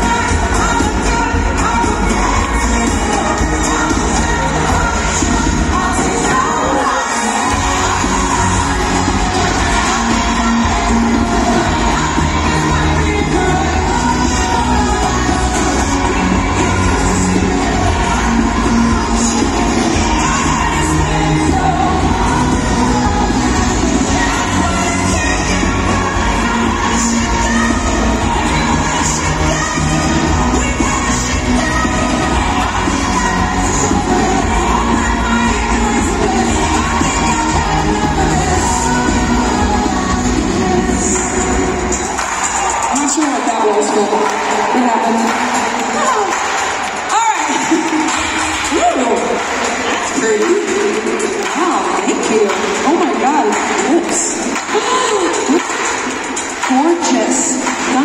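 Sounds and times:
crowd cheering: 0:00.0 - 0:58.0
live pop band with singer: 0:00.0 - 0:58.0.

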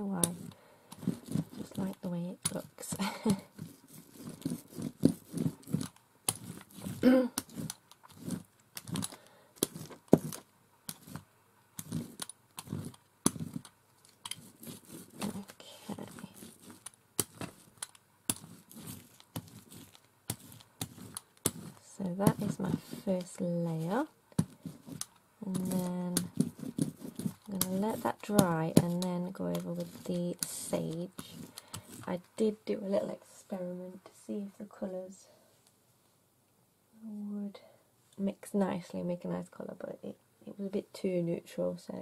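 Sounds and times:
person laughing: 0:03.0 - 0:03.5.

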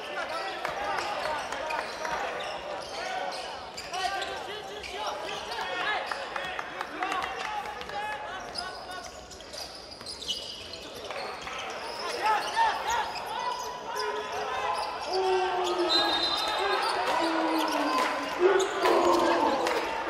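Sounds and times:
sneakers squeaking: 0:01.0 - 0:06.2, 0:08.4 - 0:19.8
players shouting: 0:11.9 - 0:20.0.

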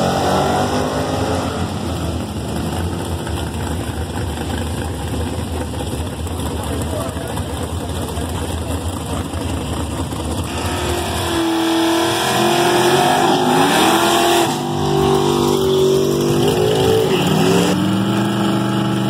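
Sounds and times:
car engine revving hard: 0:00.0 - 0:03.2, 0:10.3 - 0:19.0.

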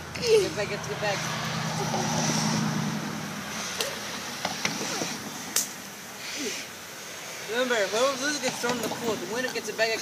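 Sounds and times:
low engine hum: 0:00.0 - 0:06.2.

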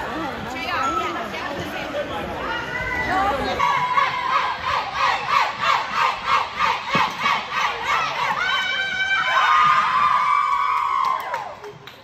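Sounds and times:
girls screaming and cheering: 0:02.6 - 0:11.8
girls chanting in unison: 0:03.6 - 0:09.1.

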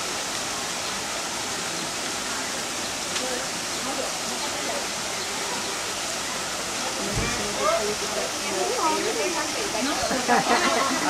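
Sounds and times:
falling water rushing: 0:00.0 - 0:11.0.

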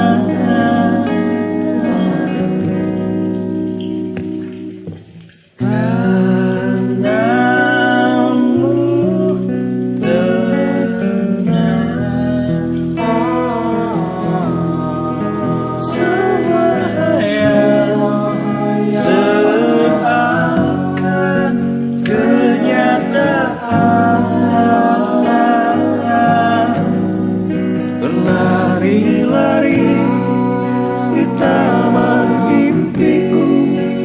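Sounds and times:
person singing: 0:00.0 - 0:03.2, 0:05.6 - 0:34.0
acoustic guitar: 0:00.0 - 0:34.0.

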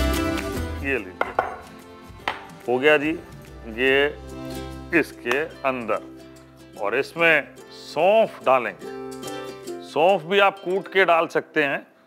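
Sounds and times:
glass knocking on wooden board: 0:01.2 - 0:02.5.

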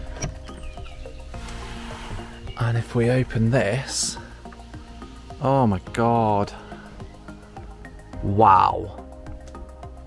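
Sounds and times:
music with sustained notes: 0:00.0 - 0:10.0.

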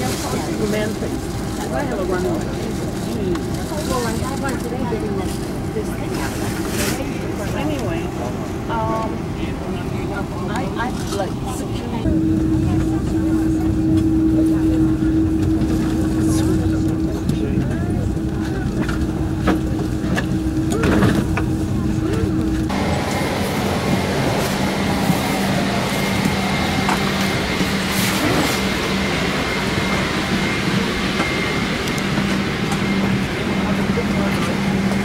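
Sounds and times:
airliner cabin rumble: 0:00.0 - 0:35.0
indistinct passenger chatter: 0:00.0 - 0:35.0
jet engines humming: 0:00.0 - 0:35.0.

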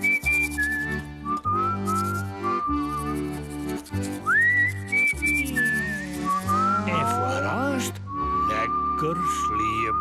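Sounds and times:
low musical accompaniment: 0:00.0 - 0:10.0
whistled melody: 0:00.0 - 0:10.0.

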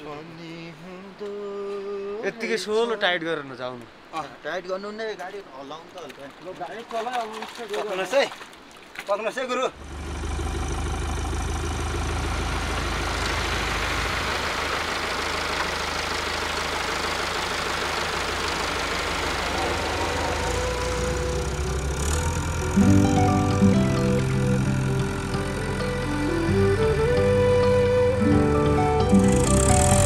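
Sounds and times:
tractor engine under load: 0:09.8 - 0:26.7, 0:29.0 - 0:30.0
background music: 0:19.9 - 0:30.0.

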